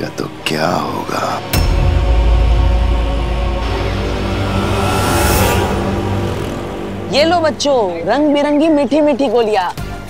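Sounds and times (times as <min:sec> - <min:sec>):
dramatic low sustained score: 0:01.4 - 0:08.8
whoosh sound effect: 0:03.9 - 0:07.3.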